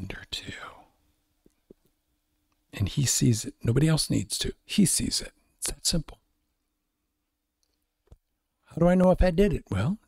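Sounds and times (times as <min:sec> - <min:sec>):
faint steady hum: 0:00.0 - 0:10.0
man's amplified voice: 0:08.7 - 0:10.0.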